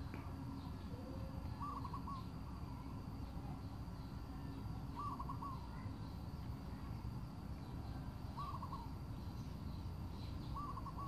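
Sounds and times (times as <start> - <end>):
bird call: 0.0 - 2.9, 4.3 - 6.3, 7.6 - 11.0.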